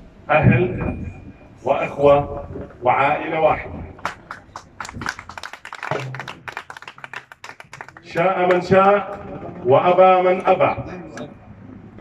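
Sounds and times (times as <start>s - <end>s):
people clapping: 4.0s - 9.3s.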